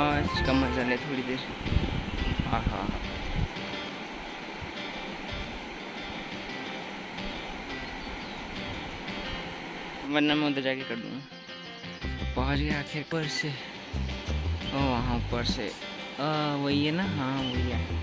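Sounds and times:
wind buffeting microphone: 1.3s - 5.9s
river rushing over stones: 3.5s - 10.2s.

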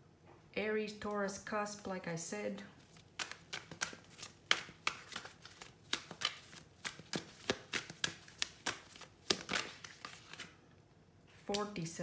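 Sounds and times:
cards being shuffled: 2.8s - 10.6s.

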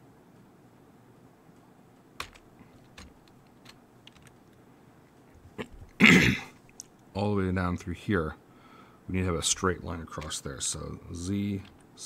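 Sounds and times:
keyboard and mouse clicks: 2.2s - 4.6s
person coughing: 5.6s - 6.6s.

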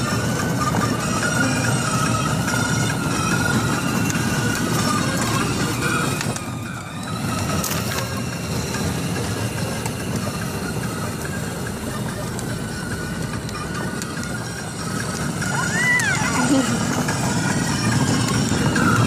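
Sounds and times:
electric motor whine: 0.0s - 19.0s
plastic wheels rumbling on asphalt: 0.0s - 19.0s.

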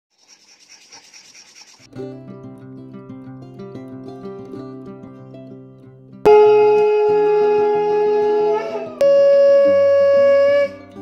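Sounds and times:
fingertip rubbing rough disc: 0.1s - 1.9s
music: 1.9s - 11.0s.

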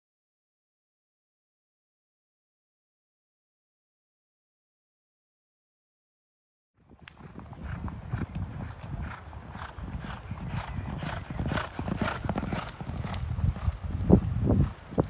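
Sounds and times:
hoofbeats on dirt: 6.8s - 15.0s.

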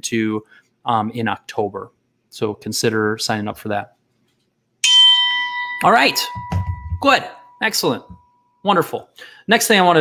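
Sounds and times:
bell-like chime ringing: 4.8s - 8.6s.

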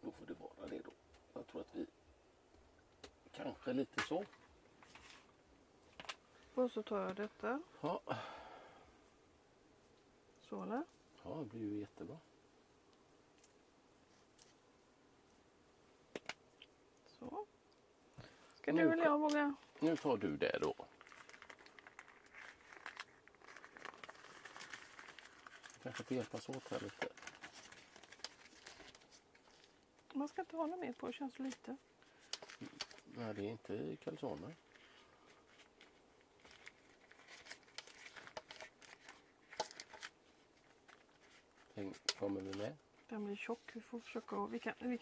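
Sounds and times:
baking paper crinkling: 19.0s - 45.0s.

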